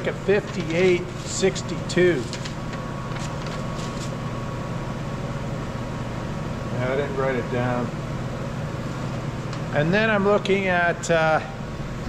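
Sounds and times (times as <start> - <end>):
mechanical hum with whine: 0.0 - 12.0
paper rustling: 0.3 - 4.3.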